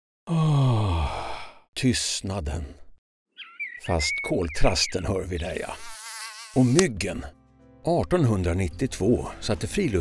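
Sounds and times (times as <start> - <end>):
man sighing: 0.3 - 1.6.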